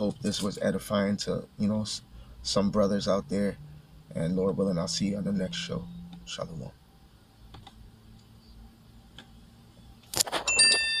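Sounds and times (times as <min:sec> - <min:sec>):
high metallic ringing: 0:10.4 - 0:11.0.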